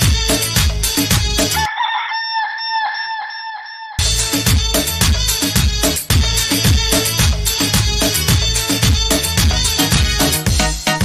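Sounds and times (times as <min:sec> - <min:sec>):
dance music: 0:00.0 - 0:01.7, 0:04.0 - 0:11.0
chicken clucking sound effect: 0:01.6 - 0:04.0.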